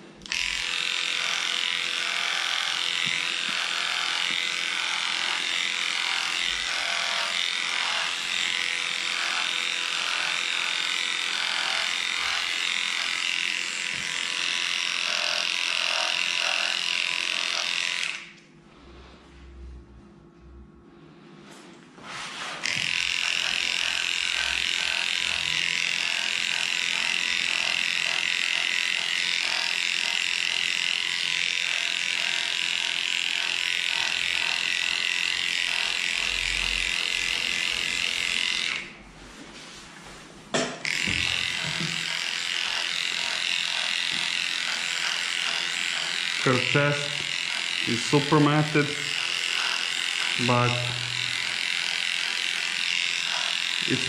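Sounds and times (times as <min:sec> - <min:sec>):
electric clippers buzzing: 0:00.0 - 0:18.5, 0:22.3 - 0:39.0, 0:40.6 - 0:54.0.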